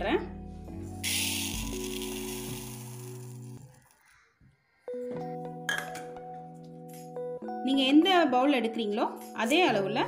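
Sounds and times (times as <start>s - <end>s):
background music with sustained notes: 0.0s - 10.0s
rice grains pouring onto a plate: 1.0s - 3.6s.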